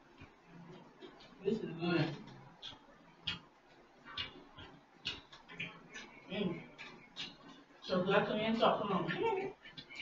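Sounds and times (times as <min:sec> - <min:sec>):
chewing and lip smacking: 0:02.2 - 0:07.8.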